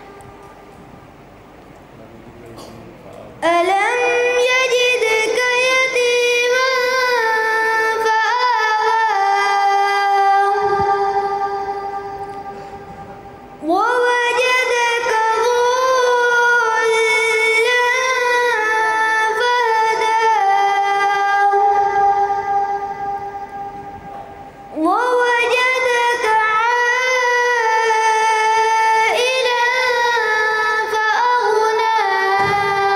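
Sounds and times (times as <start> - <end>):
boy reciting into a microphone: 2.5 - 32.9.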